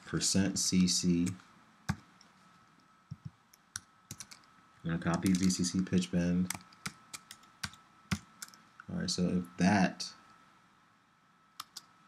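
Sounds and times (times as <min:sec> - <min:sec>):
mouse and keyboard clicks: 0:05.1 - 0:05.6.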